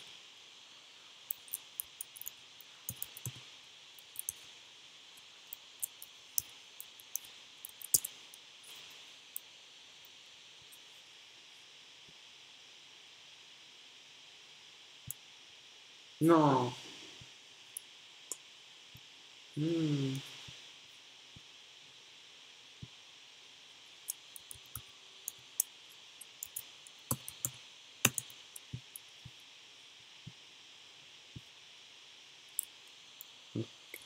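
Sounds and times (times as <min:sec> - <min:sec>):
steady low hiss: 0:00.0 - 0:34.0
computer keyboard typing: 0:02.9 - 0:03.4, 0:07.1 - 0:08.1, 0:26.2 - 0:28.8.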